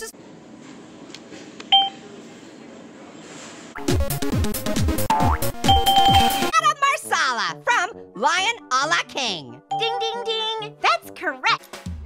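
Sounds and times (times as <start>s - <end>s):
keypad beep: 1.7s - 2.0s, 5.1s - 6.5s.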